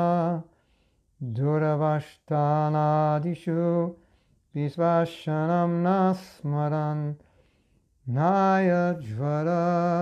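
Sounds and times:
man chanting: 0:00.0 - 0:00.5, 0:01.2 - 0:07.2, 0:08.0 - 0:10.0.

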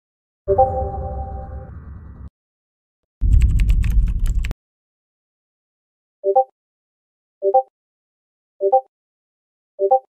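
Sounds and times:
heavy low rumble: 0:03.2 - 0:04.5
rapid clattering clicks: 0:03.2 - 0:04.5
noisy sound clip: 0:03.2 - 0:04.6.

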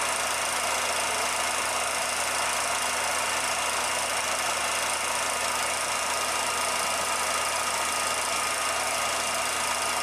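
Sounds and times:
film projector whirring: 0:00.0 - 0:10.0.

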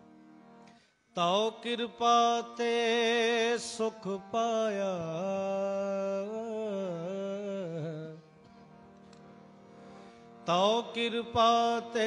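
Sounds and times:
harmonium chord: 0:00.0 - 0:12.0
man singing devotional song: 0:01.1 - 0:09.5, 0:10.3 - 0:12.0.

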